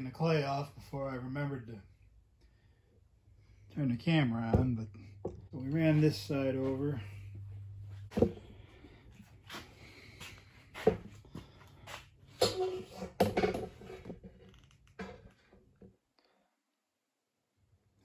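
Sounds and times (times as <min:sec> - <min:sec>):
low steady hum: 0:00.0 - 0:15.8
knocks and clatters of handling: 0:12.3 - 0:16.0.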